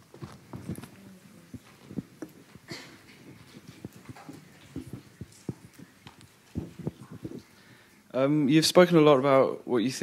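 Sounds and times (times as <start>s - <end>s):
footsteps: 0.0s - 7.8s
microphone handling knocks: 1.9s - 7.4s.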